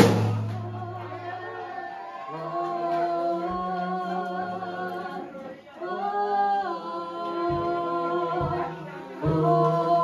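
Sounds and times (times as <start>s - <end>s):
woman singing into microphone: 0.4s - 10.0s.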